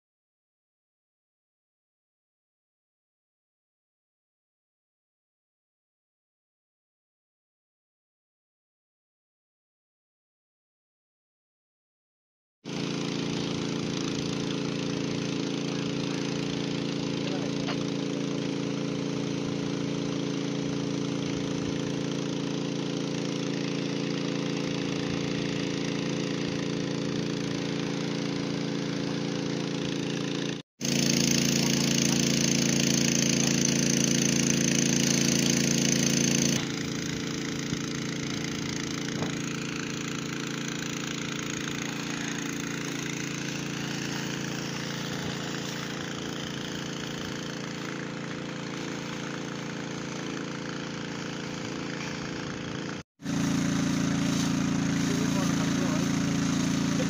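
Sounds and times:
engine running: 0:12.7 - 0:57.0
fire hose spraying: 0:12.7 - 0:57.0.

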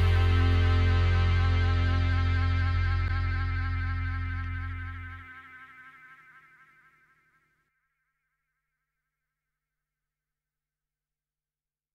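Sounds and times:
bass drone: 0:00.0 - 0:07.1
wavering synthesizer tone: 0:00.0 - 0:07.8.

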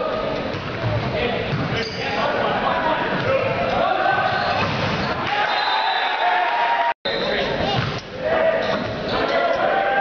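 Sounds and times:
people shouting in a gym: 0:03.3 - 0:06.9, 0:07.6 - 0:10.0.

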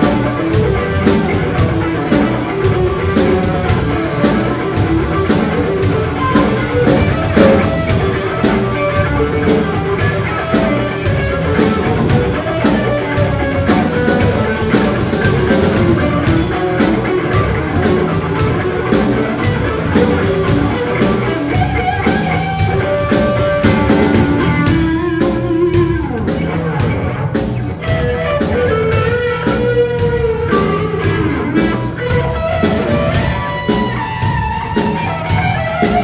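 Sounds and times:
bass guitar: 0:00.0 - 0:36.0
drum kit steady beat: 0:00.0 - 0:36.0
electric guitar: 0:00.0 - 0:36.0.

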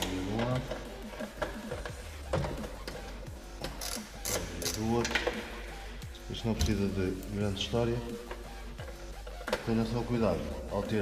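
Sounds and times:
socket wrench clicking: 0:00.6 - 0:05.4.

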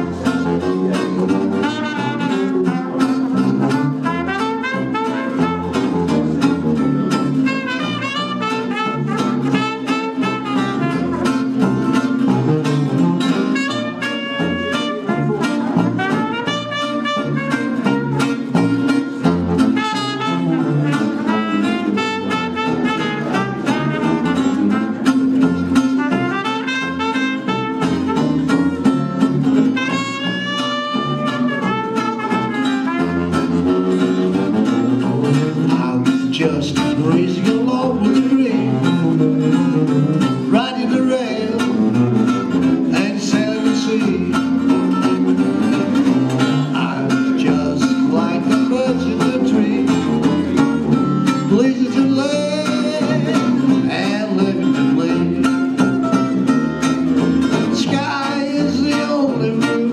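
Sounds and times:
trumpet melody: 0:00.0 - 0:35.7
bass saxophone: 0:00.0 - 0:59.9
strummed acoustic guitar: 0:00.0 - 0:59.9.

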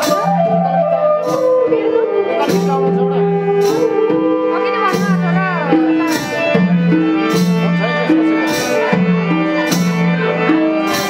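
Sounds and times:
harmonium holding notes: 0:00.0 - 0:11.0
percussion strokes: 0:00.0 - 0:11.0
violin sliding melody: 0:00.0 - 0:11.0.

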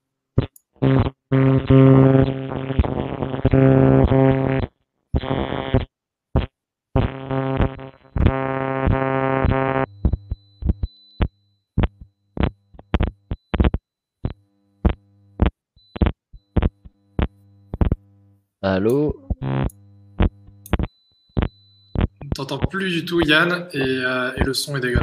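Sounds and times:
electronic interference buzz: 0:00.4 - 0:25.0.

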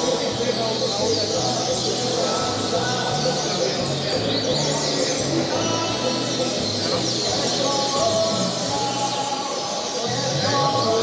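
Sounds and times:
songbirds chorus: 0:00.0 - 0:11.0.

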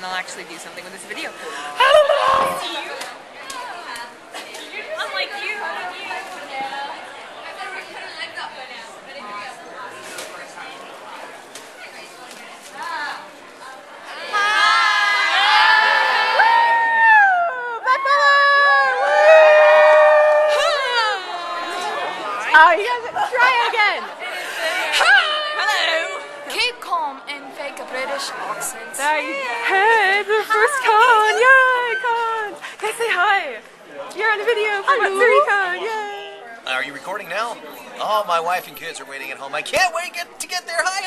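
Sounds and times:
people chattering in echoing hall: 0:00.0 - 0:41.0.

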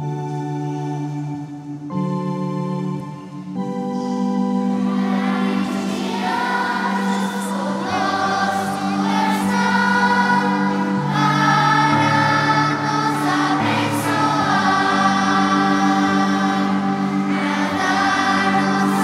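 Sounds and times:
children's choir singing a hymn: 0:00.0 - 0:19.0
sustained keyboard chords: 0:00.0 - 0:19.0.

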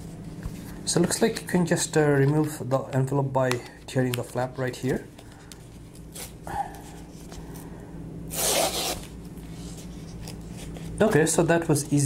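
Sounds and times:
envelope tearing: 0:08.3 - 0:09.2.

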